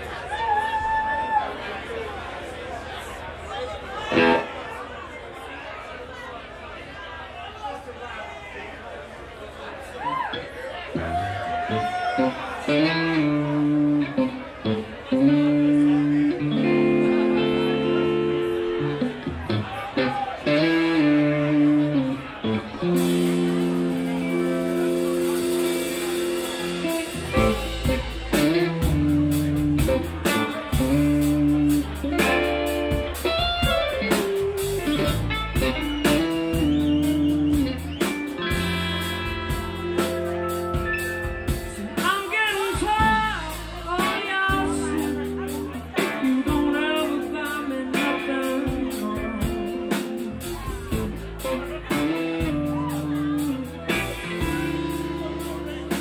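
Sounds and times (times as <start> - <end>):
drums: 0.0 - 4.9, 10.0 - 56.0
bass guitar: 4.1 - 4.6, 10.9 - 56.0
electric guitar bending notes: 11.0 - 56.0.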